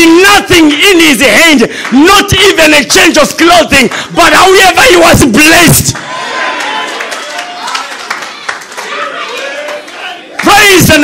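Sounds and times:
scattered hand claps: 0:05.9 - 0:11.0.

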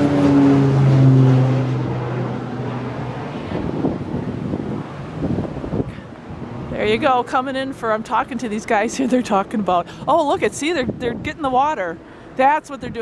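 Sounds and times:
propeller plane passing overhead: 0:00.0 - 0:13.0
wind noise on microphone: 0:00.0 - 0:13.0.

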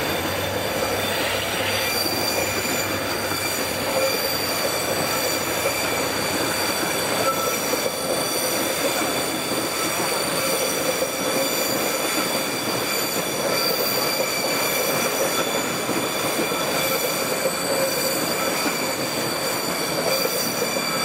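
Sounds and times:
train rolling on track: 0:00.0 - 0:21.0.

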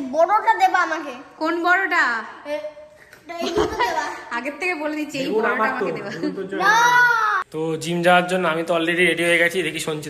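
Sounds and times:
young child wailing: 0:06.6 - 0:07.4.

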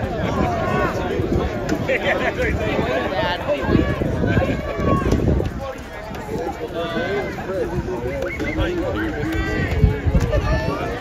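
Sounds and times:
chatter of people talking: 0:00.0 - 0:11.0
wind rumble on microphone: 0:00.0 - 0:11.0.

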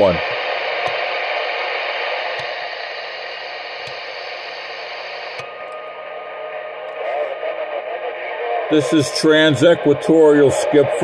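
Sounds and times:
radio static hiss: 0:00.0 - 0:11.0
channel step clicks: 0:00.8 - 0:01.2, 0:02.2 - 0:02.7, 0:03.8 - 0:04.2.

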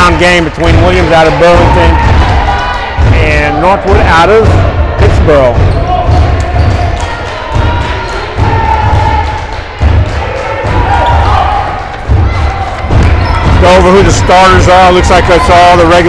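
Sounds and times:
crowd voices and shouts: 0:00.0 - 0:16.0.

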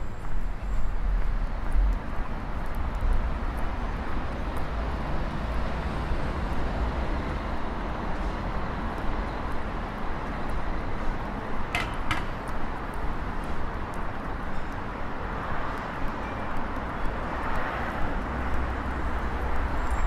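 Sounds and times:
road traffic hum: 0:00.0 - 0:20.0.

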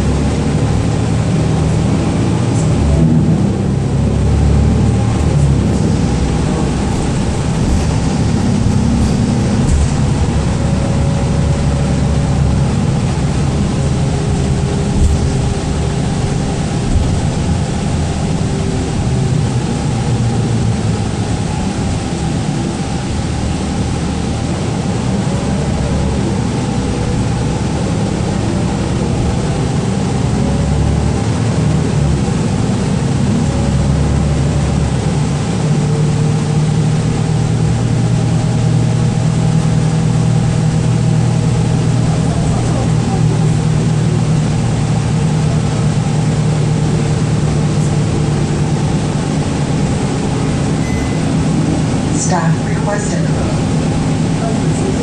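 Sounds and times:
bus engine and road drone: 0:00.0 - 0:55.0.

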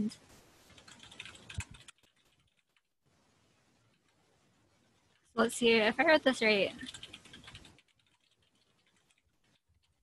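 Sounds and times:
computer keyboard typing: 0:00.7 - 0:02.9, 0:03.9 - 0:04.1, 0:05.7 - 0:10.0.

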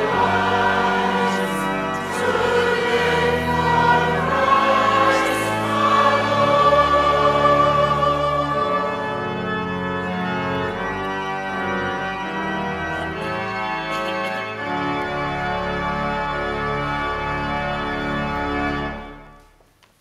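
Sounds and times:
church organ playing chords: 0:00.0 - 0:19.5.

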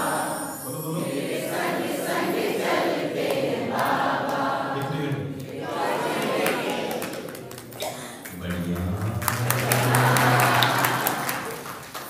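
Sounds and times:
choir singing chant: 0:00.0 - 0:07.6, 0:08.4 - 0:11.7.

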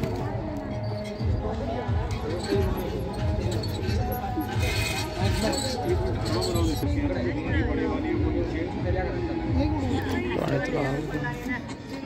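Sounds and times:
background music: 0:00.0 - 0:12.0
indistinct crowd chatter: 0:00.0 - 0:12.0.

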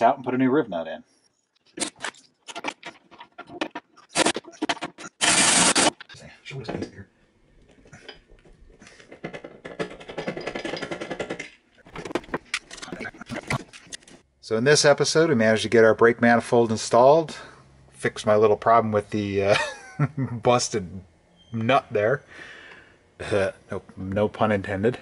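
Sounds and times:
drill burst: 0:04.1 - 0:06.0
steady rough drilling noise: 0:05.0 - 0:06.0
clicks and knocks on metal: 0:08.0 - 0:14.2.

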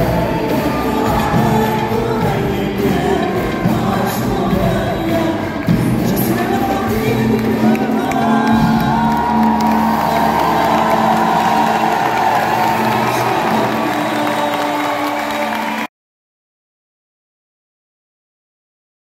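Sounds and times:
live band music: 0:00.0 - 0:15.9
crowd cheering and whooping: 0:07.8 - 0:15.9.

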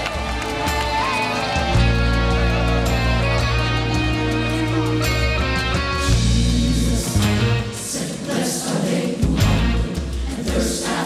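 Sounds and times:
gospel choir singing: 0:00.1 - 0:11.0
low bass notes: 0:01.4 - 0:07.8, 0:09.2 - 0:10.2.

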